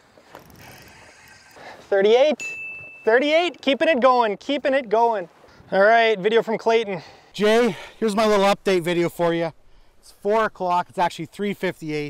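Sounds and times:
fishing reel whirring: 0:00.3 - 0:01.7.

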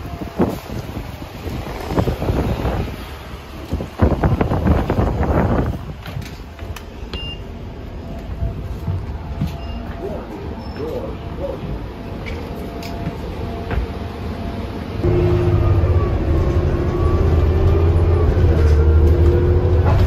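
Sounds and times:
bus engine rumbling: 0:00.0 - 0:20.0
knocks and footsteps on steps: 0:12.4 - 0:14.1.

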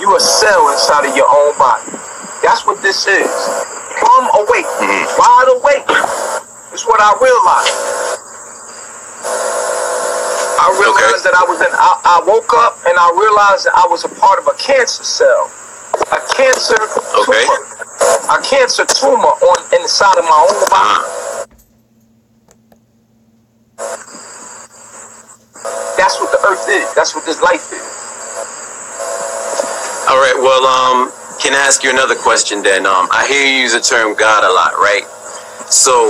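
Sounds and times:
steady background hiss: 0:00.0 - 0:21.5, 0:23.1 - 0:36.0
faint hum: 0:00.0 - 0:36.0.

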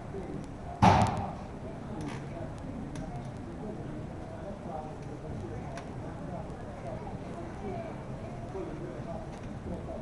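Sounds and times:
sudden thump: 0:00.8 - 0:01.5.

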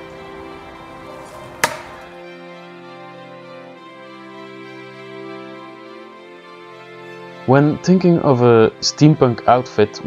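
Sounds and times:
background music: 0:00.0 - 0:10.0
sharp chopping impact: 0:01.6 - 0:02.1.

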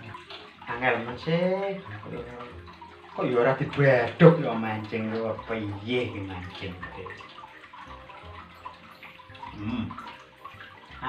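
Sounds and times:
water trickling: 0:00.0 - 0:11.0.

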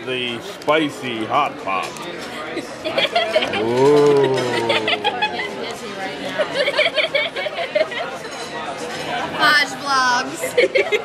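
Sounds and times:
indistinct conversation and chatter: 0:00.0 - 0:11.0.

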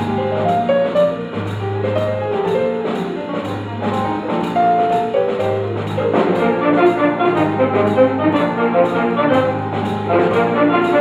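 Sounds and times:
jazz big band playing: 0:00.0 - 0:11.0.

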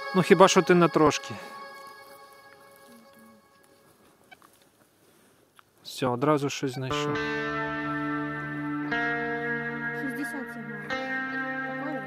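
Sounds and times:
person speaking: 0:00.0 - 0:01.8, 0:05.8 - 0:07.3.

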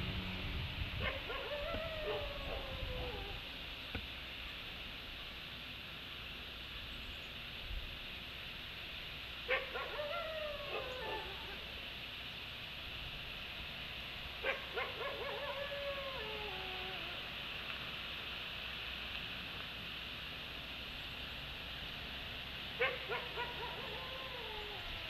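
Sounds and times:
steady hiss: 0:00.0 - 0:25.0
wolves howling: 0:01.0 - 0:03.4, 0:09.5 - 0:11.7, 0:14.4 - 0:17.2, 0:22.8 - 0:25.0.

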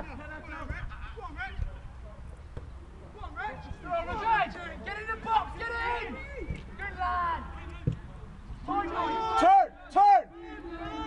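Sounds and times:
men's voices calling out: 0:08.6 - 0:11.0.

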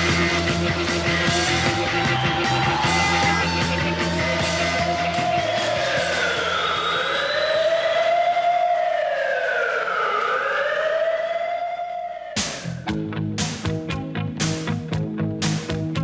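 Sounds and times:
rock song: 0:00.0 - 0:06.2, 0:12.4 - 0:16.0
siren wailing: 0:00.3 - 0:12.9
music with loud drum hits: 0:12.4 - 0:16.0.

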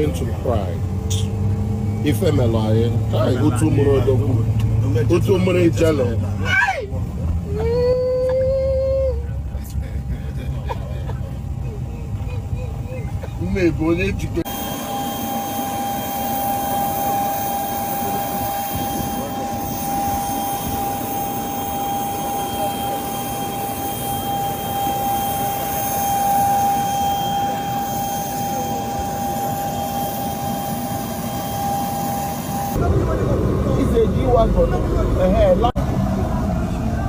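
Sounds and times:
jet engine whine: 0:00.0 - 0:37.0
low rumble: 0:32.5 - 0:37.0.

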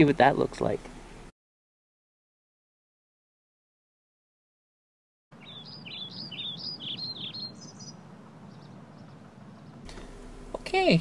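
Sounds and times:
bird singing whistled phrases: 0:05.4 - 0:09.1
low background hum: 0:05.4 - 0:11.0.

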